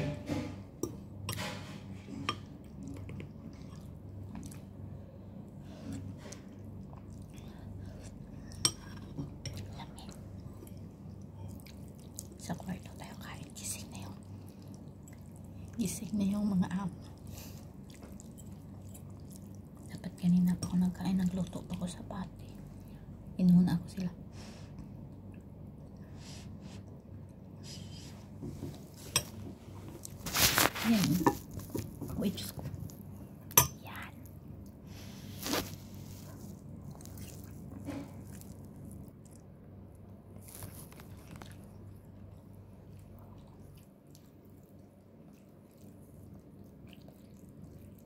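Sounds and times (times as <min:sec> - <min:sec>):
steady low hum: 0:00.0 - 0:48.0
person chewing noodles: 0:02.6 - 0:04.8, 0:10.4 - 0:12.4, 0:17.1 - 0:19.9, 0:35.4 - 0:39.6, 0:40.4 - 0:48.0
person speaking: 0:30.6 - 0:31.4.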